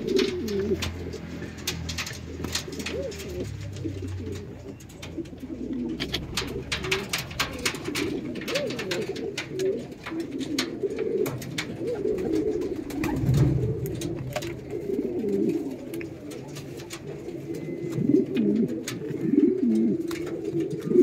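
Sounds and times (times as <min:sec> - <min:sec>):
pigeons cooing: 0:00.0 - 0:21.0.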